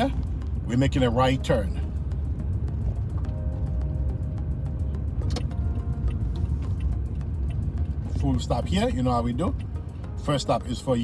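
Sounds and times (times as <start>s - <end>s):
car engine and tyres rumbling: 0.0s - 11.0s
faint background music: 0.0s - 11.0s.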